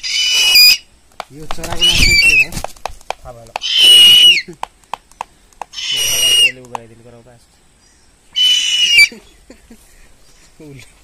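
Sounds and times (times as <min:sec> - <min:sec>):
owl screeching: 0:00.0 - 0:00.9, 0:01.6 - 0:02.6, 0:03.6 - 0:04.5, 0:05.7 - 0:06.6, 0:08.3 - 0:09.2.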